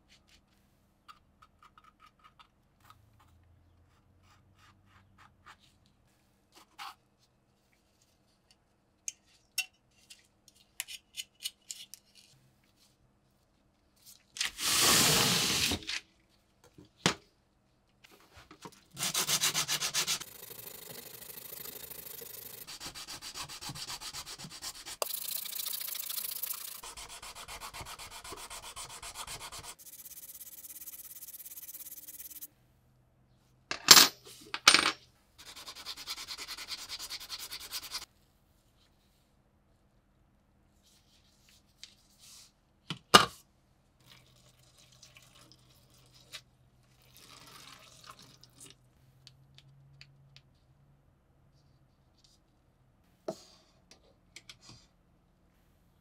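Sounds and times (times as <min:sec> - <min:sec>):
sandpaper rubbing on metal: 0:19.0 - 0:20.6, 0:22.0 - 0:32.5, 0:35.4 - 0:38.0.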